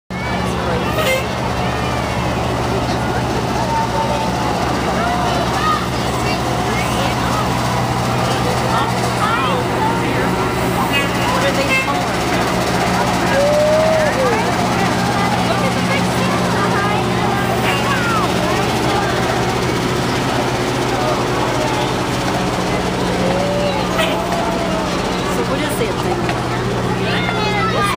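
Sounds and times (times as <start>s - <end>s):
crowd chattering: 0.1s - 27.9s
fire truck engine droning: 0.1s - 27.9s.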